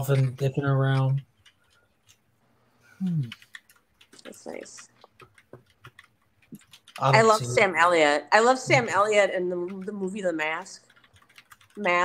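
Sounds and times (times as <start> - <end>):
keyboard typing clicks: 3.2 - 7.2, 9.0 - 12.0.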